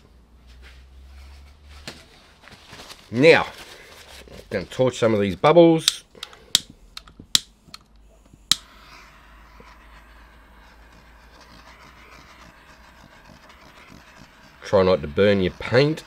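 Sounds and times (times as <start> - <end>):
torch ignition clicks: 5.8 - 8.8
torch flame hissing: 8.2 - 16.0.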